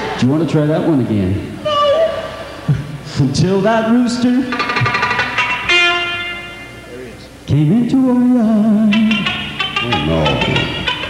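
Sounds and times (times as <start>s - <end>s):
guitar note ringing: 3.6s - 7.2s, 8.9s - 11.0s.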